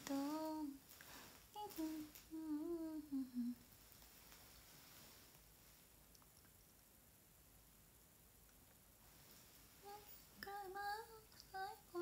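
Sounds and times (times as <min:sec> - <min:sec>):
woman humming: 0:01.6 - 0:03.6.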